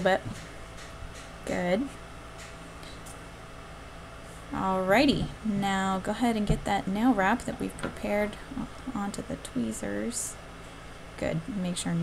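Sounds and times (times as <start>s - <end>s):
small heater humming: 0.0s - 12.0s.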